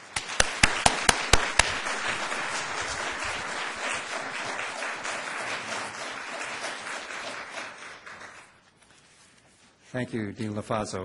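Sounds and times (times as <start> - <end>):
loud single hand claps: 0.0 - 4.7
audience applauding: 0.0 - 8.7.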